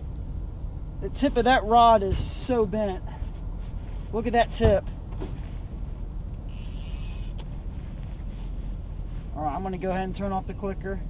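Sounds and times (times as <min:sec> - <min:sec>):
steady low rumble: 0:00.0 - 0:11.0
fishing reel clicker buzzing: 0:06.5 - 0:07.5.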